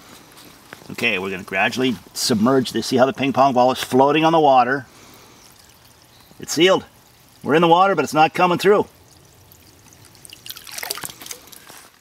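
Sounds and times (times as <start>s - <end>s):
water trickling and splashing: 0.0s - 12.0s
small drips and splashes: 0.3s - 12.0s.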